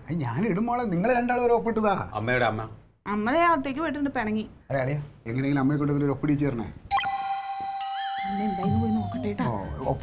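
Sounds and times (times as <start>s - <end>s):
electronic chime tone: 6.9s - 10.0s.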